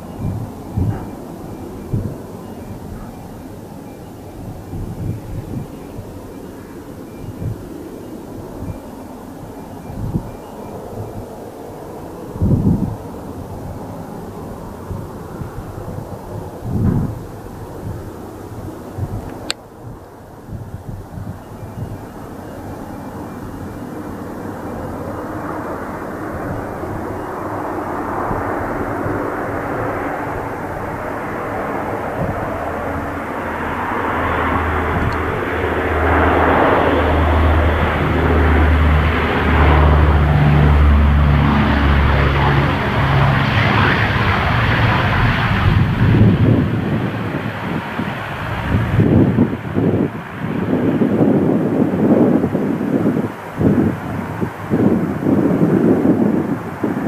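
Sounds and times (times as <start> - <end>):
turboprop engines droning: 0.0 - 57.0.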